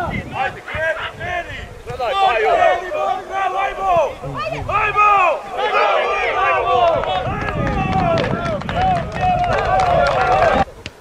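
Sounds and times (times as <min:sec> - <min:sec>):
men shouting and calling out: 0:00.0 - 0:10.8.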